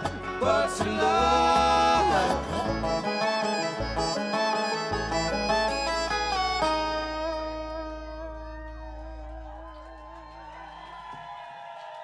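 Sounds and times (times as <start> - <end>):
sustained fiddle tones: 0.0 - 9.7
upright bass note: 0.0 - 10.2
dobro tones: 0.0 - 10.6.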